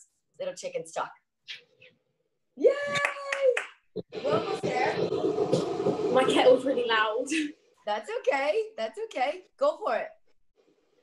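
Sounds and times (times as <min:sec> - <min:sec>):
woman cheering: 0:02.6 - 0:03.7
hands clapping: 0:02.8 - 0:03.9.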